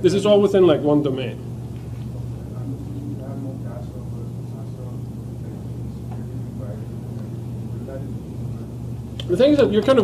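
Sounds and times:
low ventilation hum: 0.0s - 10.0s.

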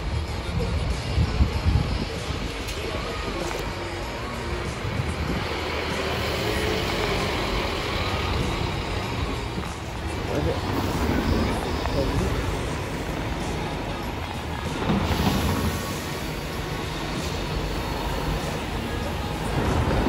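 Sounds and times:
street traffic rumble: 0.0s - 20.0s
bus engine passing: 0.1s - 20.0s.

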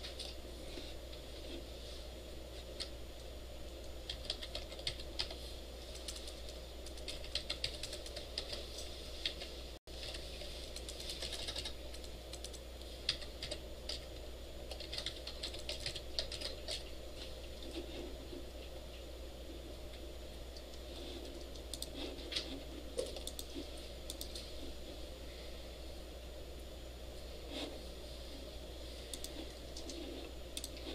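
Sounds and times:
steady low hum: 0.0s - 30.9s
typing on computer keyboard: 4.0s - 8.6s, 10.0s - 14.0s, 14.7s - 16.8s.

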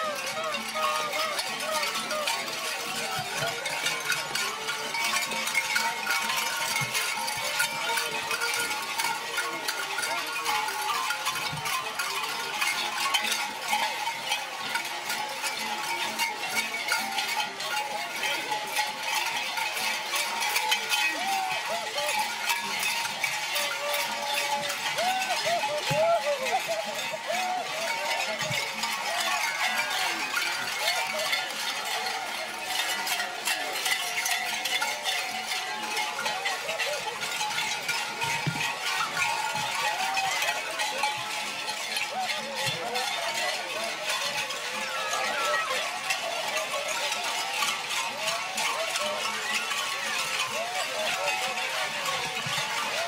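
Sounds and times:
crowd hubbub: 0.0s - 53.0s
metal bells jangling: 0.0s - 53.0s.

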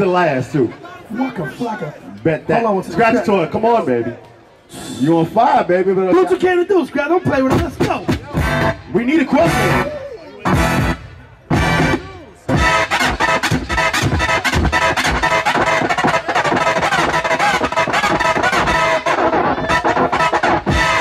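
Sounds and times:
dj scratching vinyl records: 9.4s - 21.0s.

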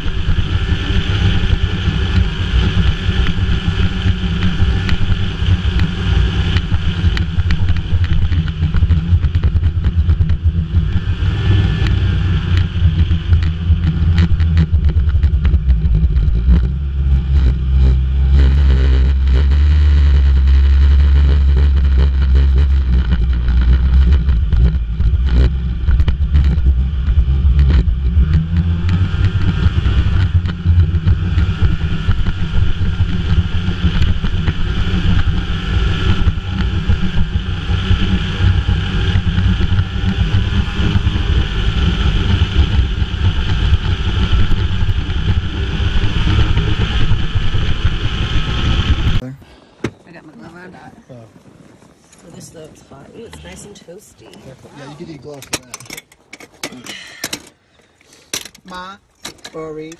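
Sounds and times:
snowmobile engine drone: 0.0s - 55.2s.

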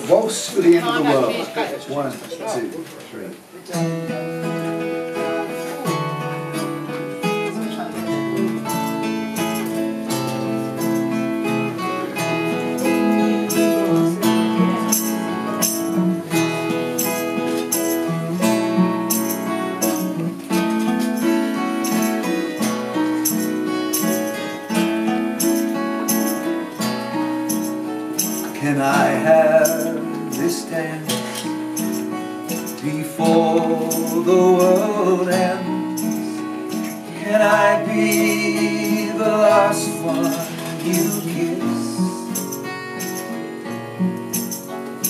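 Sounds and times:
guitars and mandolin waltz: 0.0s - 45.0s.

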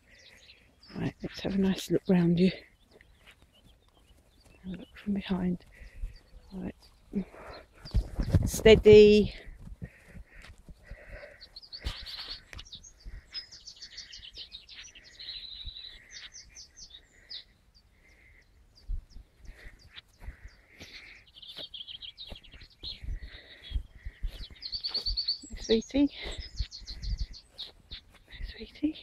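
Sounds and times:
birds chirping and trilling: 0.0s - 29.0s.

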